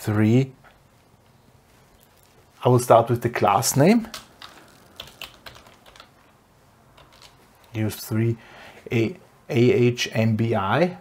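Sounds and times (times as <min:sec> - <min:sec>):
keyboard keystrokes: 0:04.1 - 0:06.1, 0:07.0 - 0:07.4.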